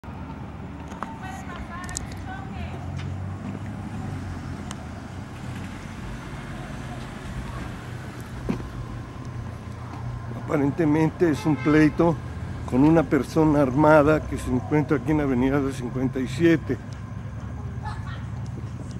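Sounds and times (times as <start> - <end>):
car traffic hum: 0.0 - 18.9
faint distant voices: 6.0 - 8.9.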